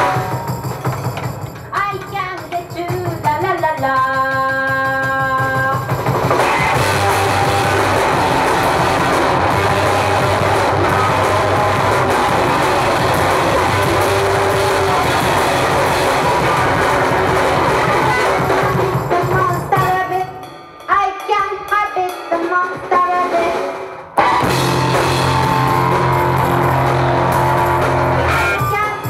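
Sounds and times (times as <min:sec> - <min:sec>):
rock band playing loud: 0:00.0 - 0:01.8, 0:04.9 - 0:20.2, 0:22.5 - 0:29.0.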